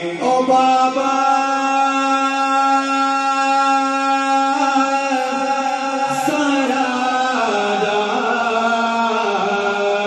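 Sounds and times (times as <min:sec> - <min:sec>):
man singing into microphone: 0:00.0 - 0:10.0.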